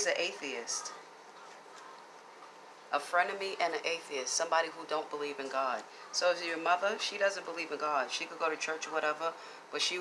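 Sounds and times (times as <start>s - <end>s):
woman's voice: 0.0s - 1.1s, 2.9s - 10.0s.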